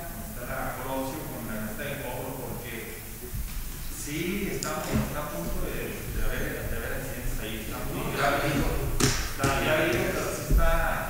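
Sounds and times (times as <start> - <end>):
people talking low: 0.6 - 11.0.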